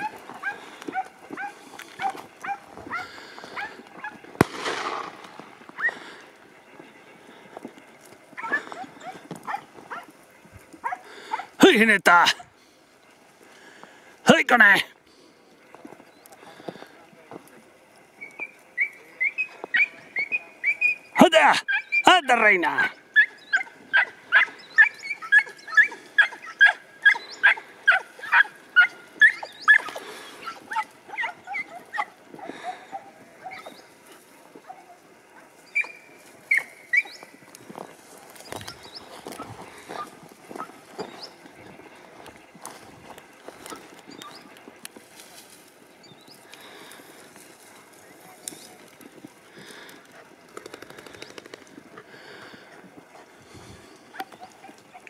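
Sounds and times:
hounds yelping: 0.0 - 6.5, 8.0 - 11.6, 18.2 - 44.6, 49.7 - 55.0.

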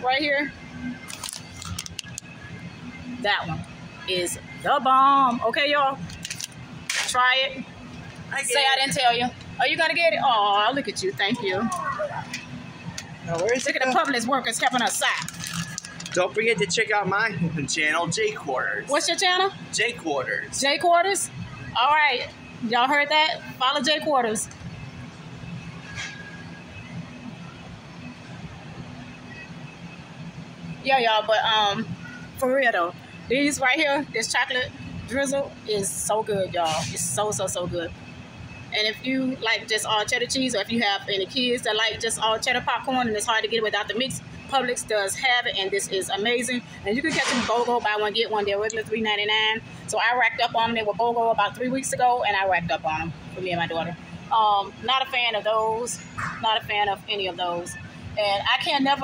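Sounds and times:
low steady hum: 0.0 - 59.0
plastic bag crackling: 13.3 - 16.2.

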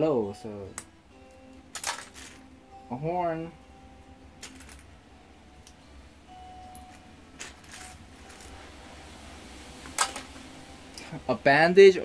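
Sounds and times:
plastic bricks clattering: 1.8 - 2.4, 4.4 - 4.8.

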